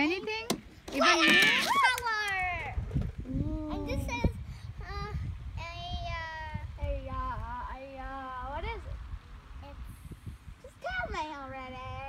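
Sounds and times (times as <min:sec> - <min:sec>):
steady low rumble: 0:02.1 - 0:12.0.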